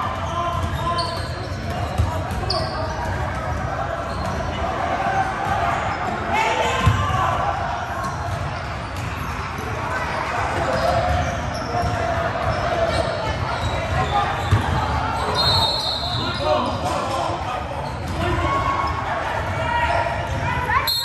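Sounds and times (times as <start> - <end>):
chatter and shouts in a hall: 0.0 - 21.0.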